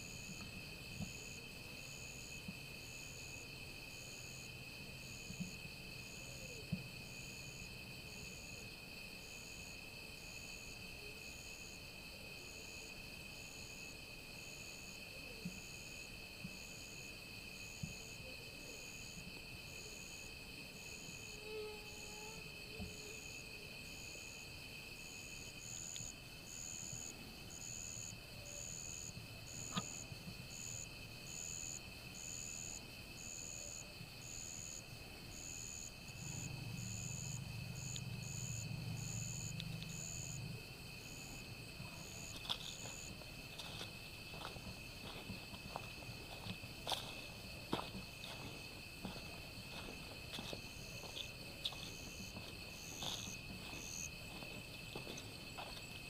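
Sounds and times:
insect call pulsing: 0:00.0 - 0:56.0
night insects trilling: 0:00.0 - 0:56.0.

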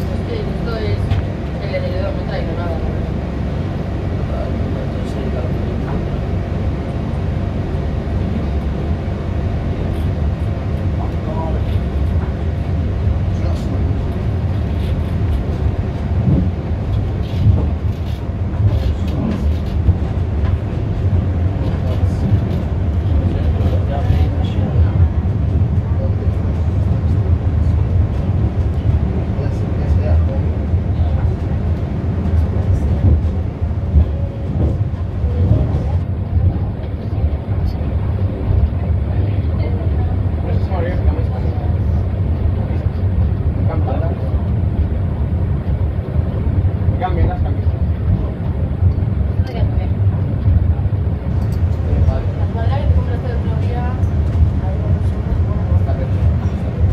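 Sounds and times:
funicular car rumbling on track: 0:00.0 - 0:56.9
faint voices: 0:17.3 - 0:56.9.

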